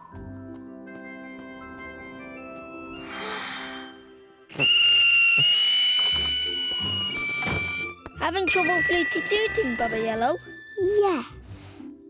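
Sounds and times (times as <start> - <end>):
shrill toy flute whistle: 4.5 - 10.4.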